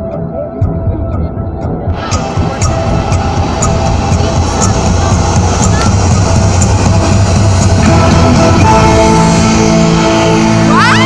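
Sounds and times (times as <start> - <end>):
low throbbing pulse: 0.0 - 11.0
music over loudspeakers: 0.0 - 11.0
clock-like tick: 1.9 - 6.8.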